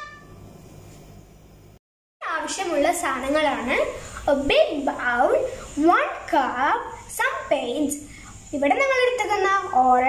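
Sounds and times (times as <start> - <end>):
child's voice: 2.2 - 10.0.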